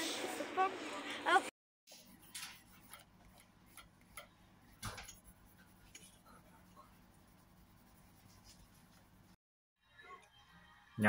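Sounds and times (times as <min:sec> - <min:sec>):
pencil scratching on paper: 0:01.9 - 0:09.3.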